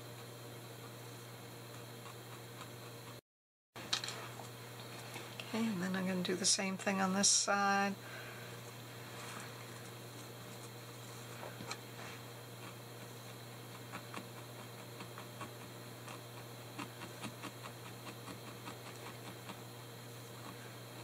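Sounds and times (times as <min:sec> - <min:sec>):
steady low hum: 0:00.0 - 0:03.2, 0:03.8 - 0:21.0.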